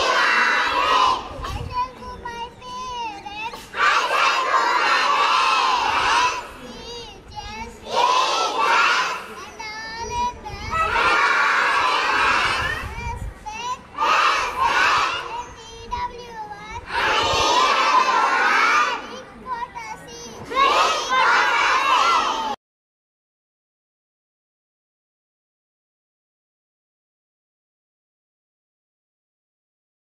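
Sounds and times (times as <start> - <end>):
children shouting together: 0.0 - 22.6
quiet children's voices: 0.0 - 22.6.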